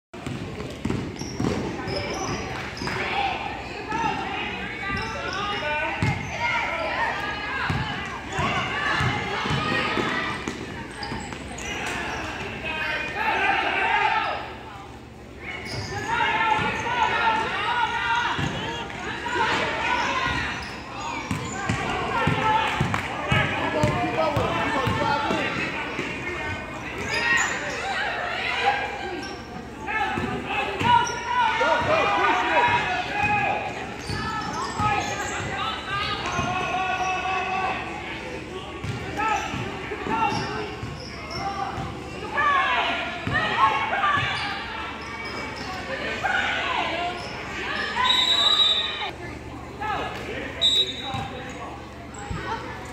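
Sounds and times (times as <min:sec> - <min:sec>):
voices calling out: 0:00.8 - 0:52.9
basketball dribbling: 0:21.3 - 0:26.1.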